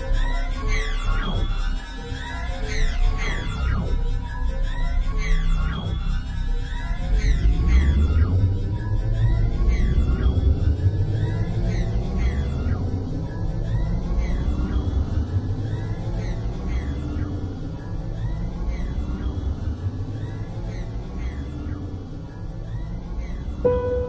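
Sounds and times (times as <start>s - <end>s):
faint held synth notes: 23.6s - 24.0s
echoing tones sweeping downward: 23.7s - 24.0s.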